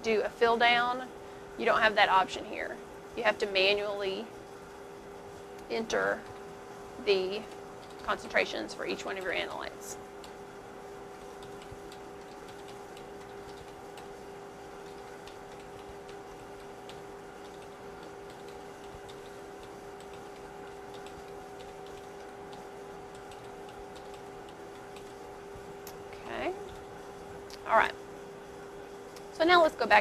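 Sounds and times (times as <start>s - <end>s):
steady electrical hum: 0.0s - 30.0s.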